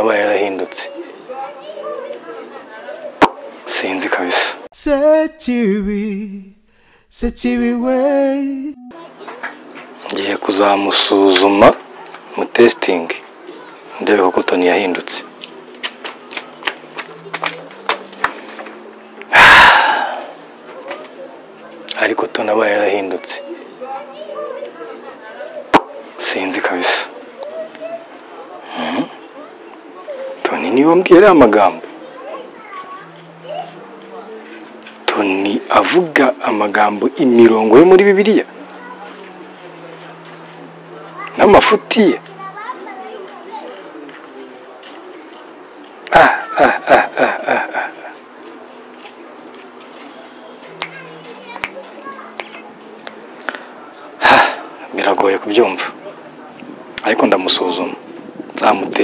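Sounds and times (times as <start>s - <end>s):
faint children playing: 0.0s - 4.7s, 8.8s - 59.0s.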